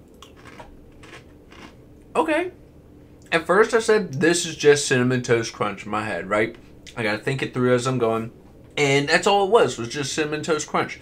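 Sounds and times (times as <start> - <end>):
person chewing crunchy cereal: 0.2 - 1.8.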